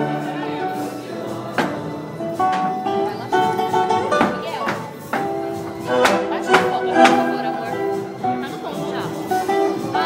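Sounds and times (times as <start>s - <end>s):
flamenco guitar playing: 0.0s - 10.0s.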